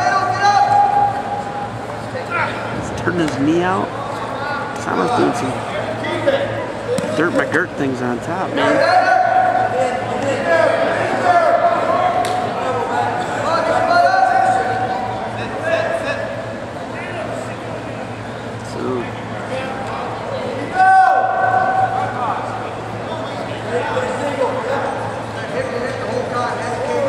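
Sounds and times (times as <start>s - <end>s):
steady low hum: 0.0s - 27.0s
people shouting long yelled calls: 8.6s - 9.8s, 20.7s - 22.0s.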